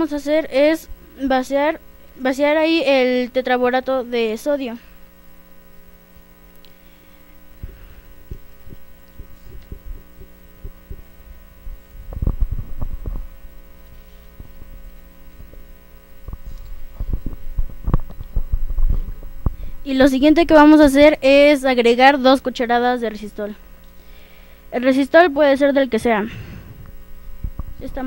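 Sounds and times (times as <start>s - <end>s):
electrical mains hum: 0.0s - 28.0s
microphone handling thumps: 7.5s - 19.8s, 26.1s - 28.0s.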